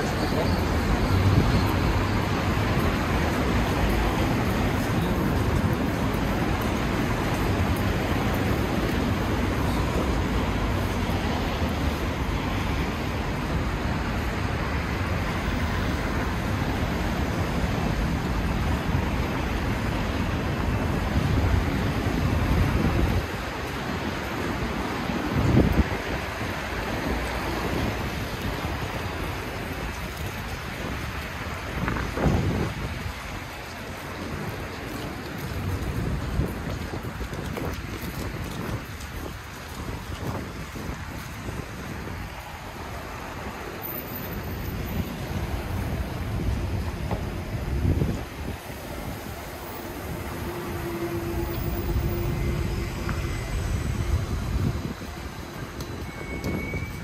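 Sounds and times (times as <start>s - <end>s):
wind rumbling on microphone: 0.0s - 57.0s
cars driving past: 42.9s - 57.0s.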